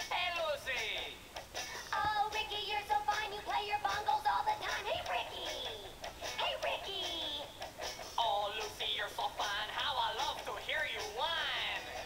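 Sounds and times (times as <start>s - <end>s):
recorded song with singing: 0.0s - 12.0s.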